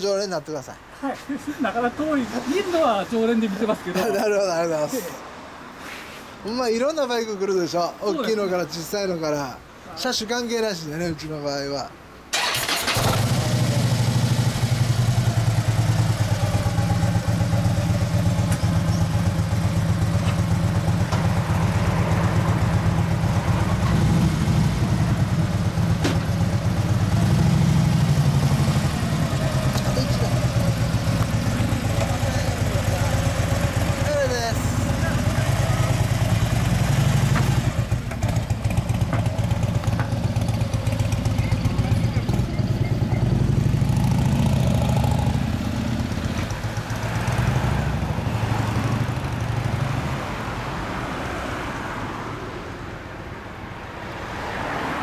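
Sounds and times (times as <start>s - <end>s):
motorcycle engine idling: 12.4s - 23.9s, 28.3s - 43.3s
second motorcycle engine running: 12.4s - 48.1s.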